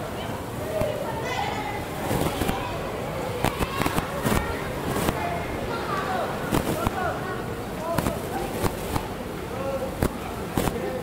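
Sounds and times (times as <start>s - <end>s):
footballs being kicked: 6.5s - 7.0s.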